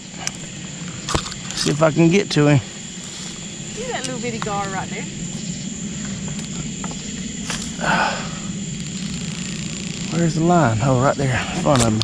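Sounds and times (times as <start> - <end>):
night insects droning: 0.0 - 12.0.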